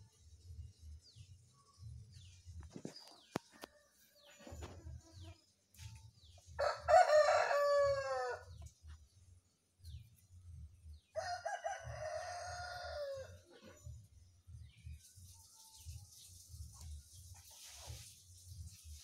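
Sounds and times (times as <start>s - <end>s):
rooster crowing: 6.6s - 8.5s, 11.1s - 13.4s.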